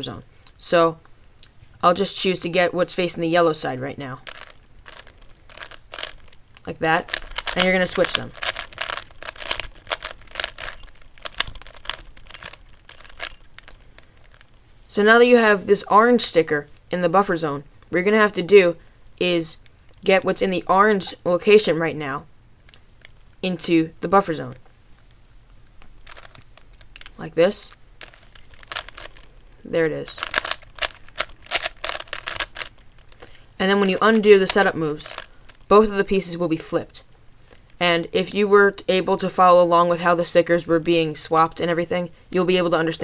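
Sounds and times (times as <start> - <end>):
puzzle cube layers clicking: 4.2 - 14.6, 26.0 - 27.2, 28.0 - 35.8.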